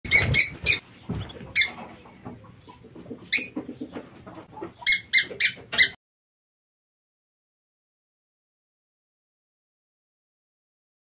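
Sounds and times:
canaries chirping: 0.1s - 6.0s.

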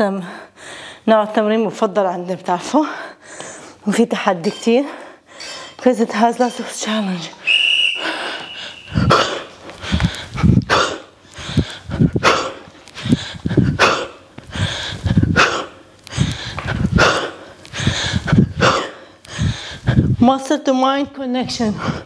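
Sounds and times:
person breathing forcefully: 8.0s - 20.2s, 21.6s - 22.0s.

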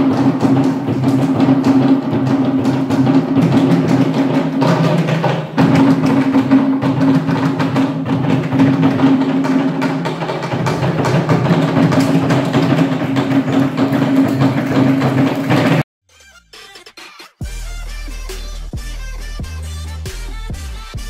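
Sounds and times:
sharp wooden knocks: 0.0s - 15.8s
drums: 0.0s - 21.0s.

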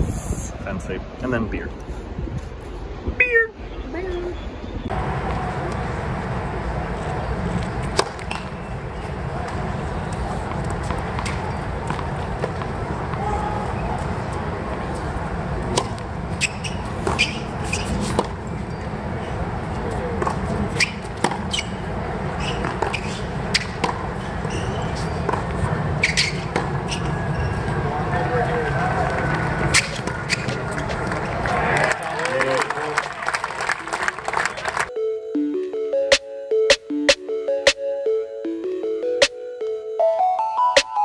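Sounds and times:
murmur of spectator chatter: 1.7s - 16.8s, 24.1s - 34.9s.

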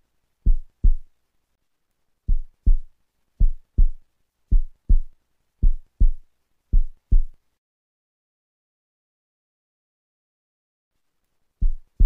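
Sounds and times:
heartbeat thuds: 0.4s - 1.1s, 2.3s - 7.4s, 11.6s - 12.0s.

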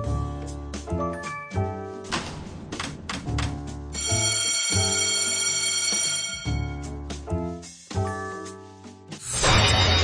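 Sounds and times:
slot machine win jingle: 3.9s - 7.0s, 9.3s - 10.0s.

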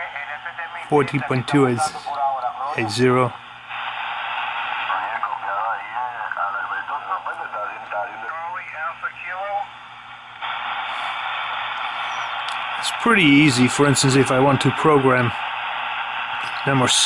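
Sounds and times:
radio hiss: 0.0s - 17.0s.

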